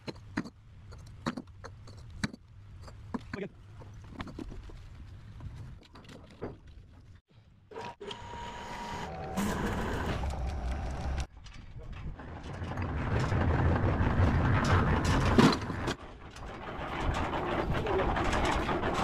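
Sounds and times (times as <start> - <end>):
winch motor humming: 7.8 - 11.3.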